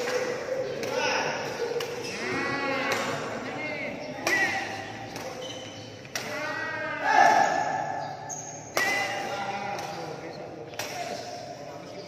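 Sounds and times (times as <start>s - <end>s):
badminton racket hitting shuttlecock: 0.0s - 3.4s, 4.2s - 11.5s.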